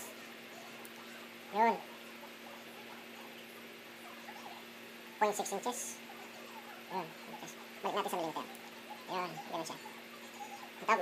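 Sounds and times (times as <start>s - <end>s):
steady low hum: 0.0s - 11.0s
faint squeaky chirps: 0.1s - 11.0s.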